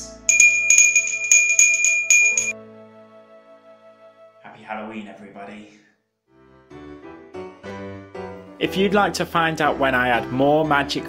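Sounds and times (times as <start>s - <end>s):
small hand bell ringing: 0.3s - 2.5s
soft background music: 2.5s - 5.8s, 6.4s - 11.0s.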